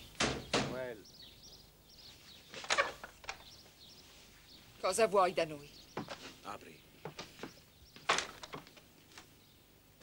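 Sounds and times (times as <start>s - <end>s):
thuds on a door: 0.2s - 0.8s.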